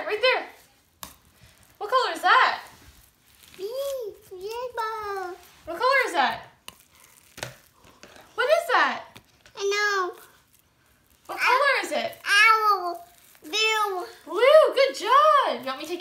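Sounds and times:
child making sing-song vocal sounds: 3.6 - 5.4, 12.2 - 14.2.

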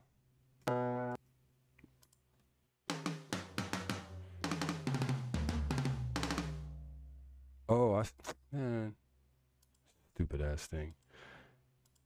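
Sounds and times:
drum beat: 2.9 - 6.8.

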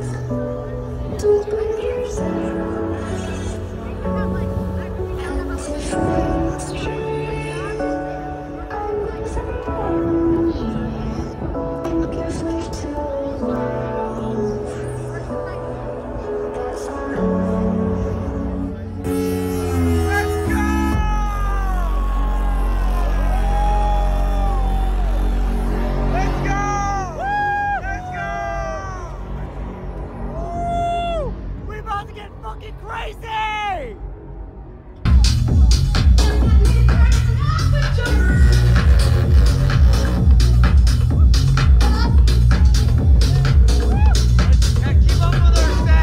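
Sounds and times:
electronic dance music: 19.0 - 27.2, 35.1 - 46.0.

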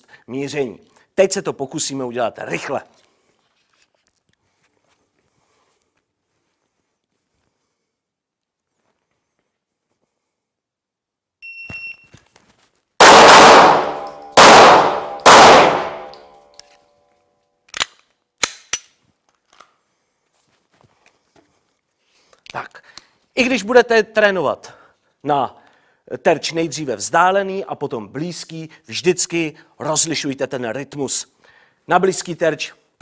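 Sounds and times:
short high beep: 11.4 - 12.1
loud pistol shots: 13.0 - 16.4
sharp metallic clicks: 13.0 - 16.6.

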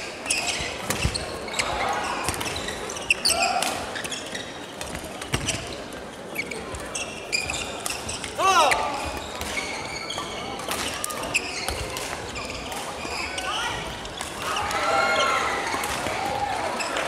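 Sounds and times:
voices echoing in hall: 0.0 - 17.0
shoe squeaks on wooden floor: 0.2 - 3.4, 5.3 - 10.4, 11.3 - 14.2.

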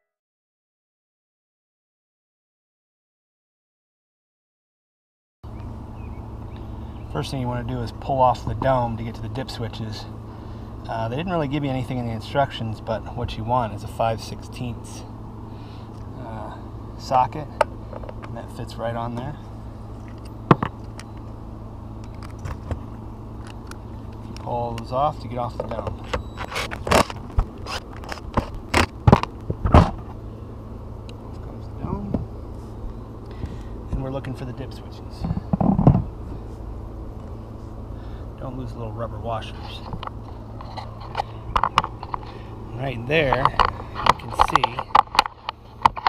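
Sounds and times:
steady low hum: 5.4 - 46.0.

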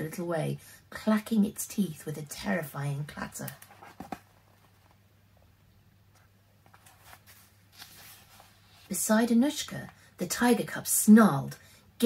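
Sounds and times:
soft paper handling: 6.1 - 9.0.

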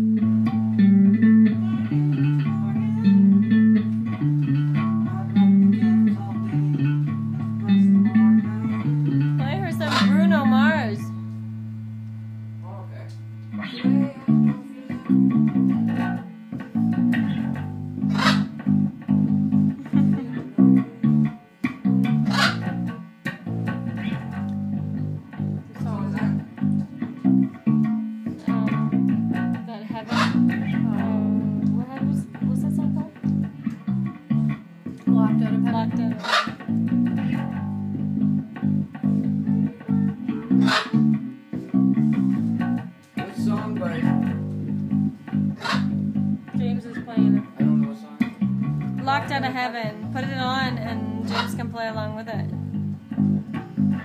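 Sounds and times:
electric bass riff: 0.0 - 54.0.

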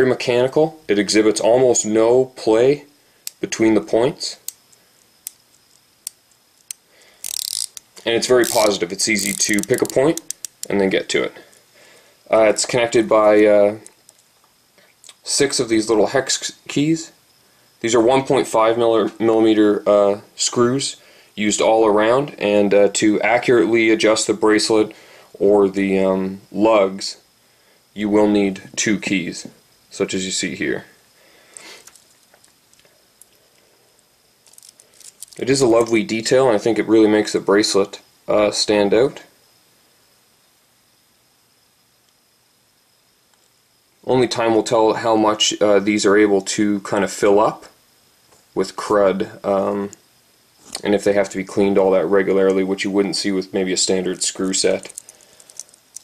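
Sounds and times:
watch bezel clicks: 4.5 - 10.7.

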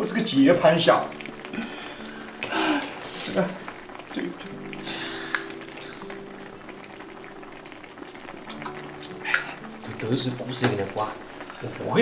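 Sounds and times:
broth bubbling in a pot: 0.0 - 12.0.

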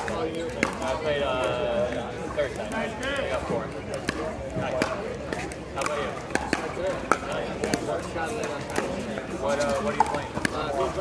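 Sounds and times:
paddle striking ball: 0.0 - 0.9, 3.9 - 9.1, 9.7 - 10.7
people talking: 0.0 - 11.0.

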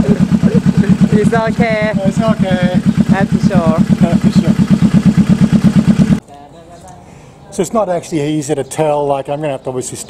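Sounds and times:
motorcycle engine idling: 0.0 - 6.2.

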